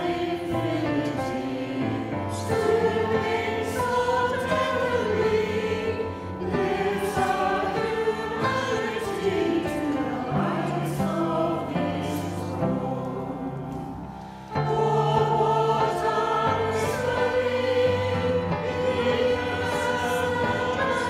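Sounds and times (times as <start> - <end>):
choir singing in harmony: 0.0 - 21.0.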